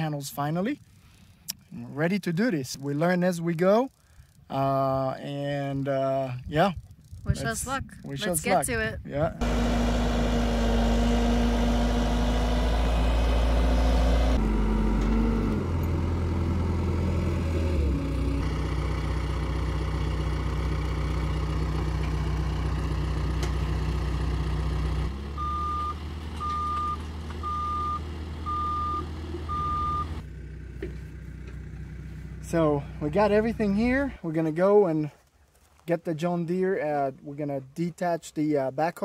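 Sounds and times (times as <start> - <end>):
diesel engine running: 7.1 - 34.3
reverse alarm beeps: 25.4 - 30.1.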